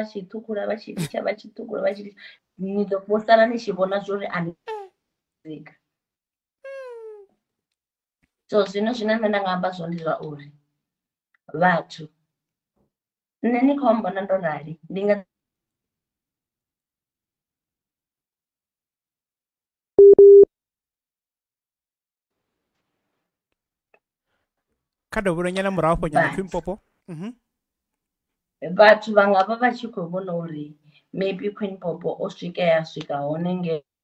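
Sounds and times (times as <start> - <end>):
short electronic beeps: 20.0 - 20.5.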